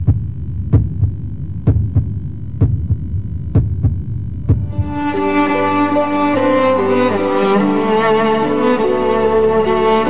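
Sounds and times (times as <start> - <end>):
heartbeat thumps: 0.0 - 5.2
bowed strings: 4.6 - 10.0.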